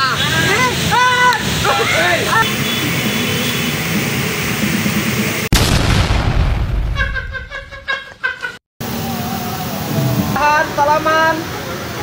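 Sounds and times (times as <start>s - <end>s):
loud boom: 5.5s - 7.5s.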